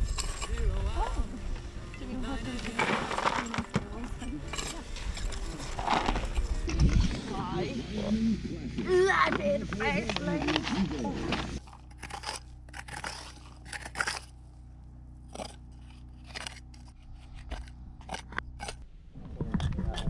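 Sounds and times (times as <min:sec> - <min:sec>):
trowel scraping gravelly rock: 0:00.0 - 0:01.4, 0:02.2 - 0:07.3, 0:09.8 - 0:14.6, 0:15.2 - 0:18.8
voices: 0:00.4 - 0:06.3, 0:06.9 - 0:11.6.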